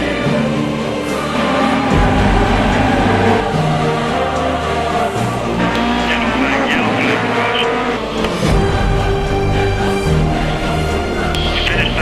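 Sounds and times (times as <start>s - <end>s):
race car engines revving: 0.0s - 10.5s
music soundtrack: 0.0s - 12.0s.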